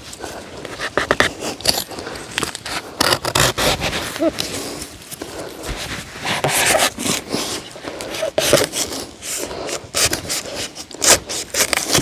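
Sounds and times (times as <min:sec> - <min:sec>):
scratchy rubbing and scraping: 0:00.0 - 0:12.0.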